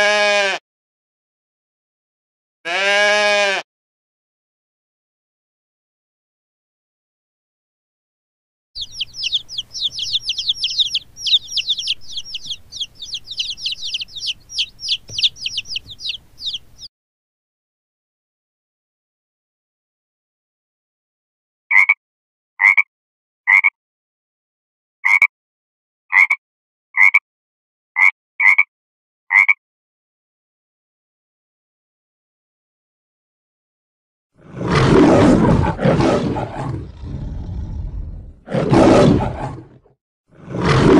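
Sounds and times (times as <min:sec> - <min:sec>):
frog croaking: 0:08.8 - 0:16.6, 0:21.7 - 0:22.0, 0:25.1 - 0:25.3, 0:26.1 - 0:26.4, 0:29.3 - 0:29.6
baby chicks peeping: 0:08.8 - 0:16.9.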